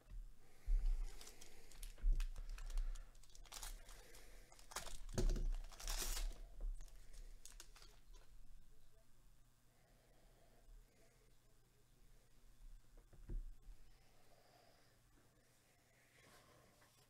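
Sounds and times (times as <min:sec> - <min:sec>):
plastic wrapper tearing and crinkling: 0:01.0 - 0:08.3.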